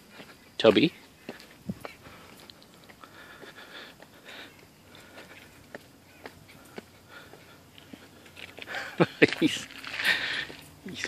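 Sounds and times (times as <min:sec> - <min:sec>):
footsteps on stone steps: 0:00.0 - 0:11.0.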